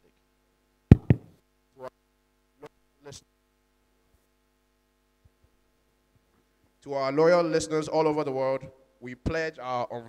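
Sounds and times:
mains hum through speakers: 0.0s - 10.0s
thumps on microphone: 0.9s - 1.4s.

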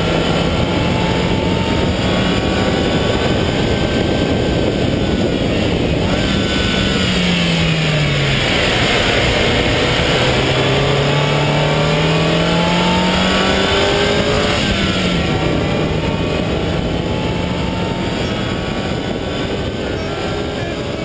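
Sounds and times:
car engine accelerating: 0.0s - 21.0s.

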